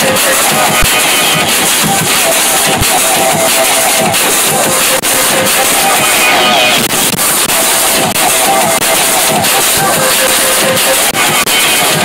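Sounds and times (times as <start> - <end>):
drum and bass music: 0.0 - 12.0.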